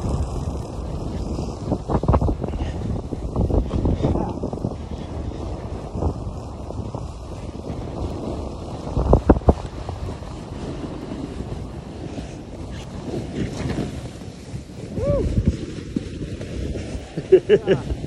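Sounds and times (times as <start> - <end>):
snowboards scraping over snow: 0.0 - 18.0
wind rushing over microphone: 0.0 - 18.0.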